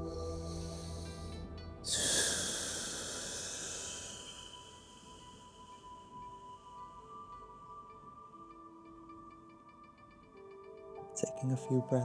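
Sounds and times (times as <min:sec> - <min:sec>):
soft ambient music: 0:00.0 - 0:12.0
breathy exhale: 0:01.9 - 0:06.2.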